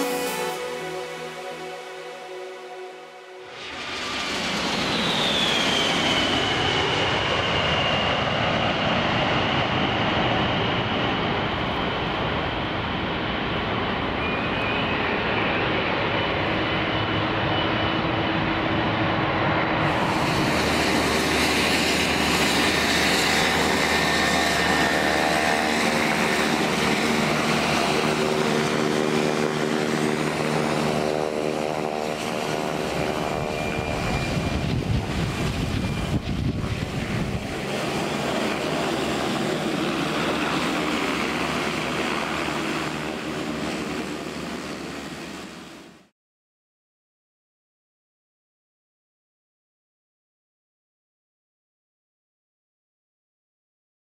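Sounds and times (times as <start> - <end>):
turboprop engines droning: 0.0 - 46.0
jet engines on approach: 0.0 - 46.1
gusty low rumble: 33.8 - 37.7.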